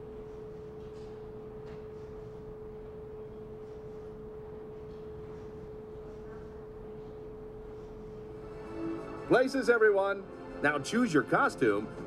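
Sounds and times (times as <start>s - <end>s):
steady single-pitched hum: 0.0s - 12.0s.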